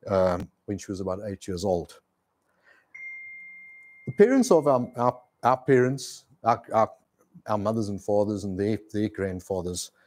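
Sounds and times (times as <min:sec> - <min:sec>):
bell-like ding: 0:03.0 - 0:05.3.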